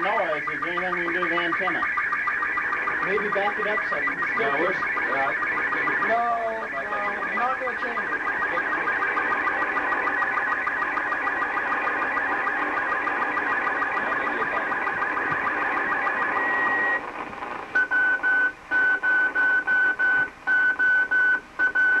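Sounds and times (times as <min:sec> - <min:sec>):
steady tone cutting in and out: 0:00.0 - 0:17.0.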